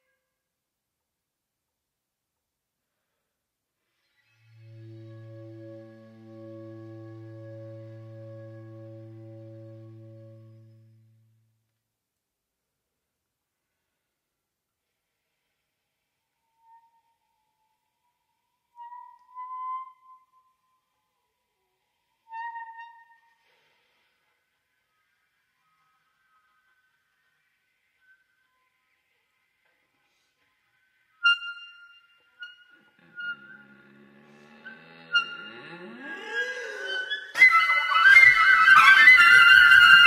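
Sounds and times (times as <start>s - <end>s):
held flute and bass clarinet note: 4.4s - 11.5s, 32.4s - 35.9s, 36.8s - 40.0s.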